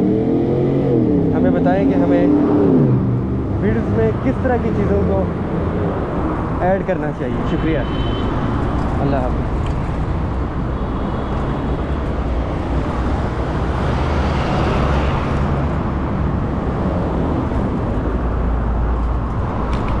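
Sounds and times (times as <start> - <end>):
street traffic rumble: 0.0 - 20.0
vehicle passing: 11.3 - 20.0.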